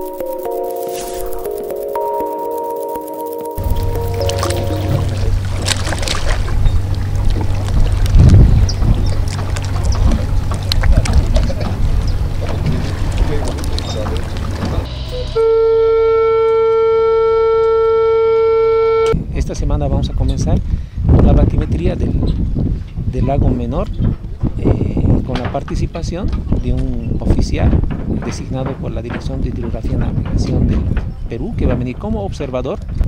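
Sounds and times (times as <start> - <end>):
loud steady tone: 0.0 - 7.2, 14.8 - 19.2
motorboat engine drone: 0.0 - 19.2
wind and water noise: 3.6 - 33.0.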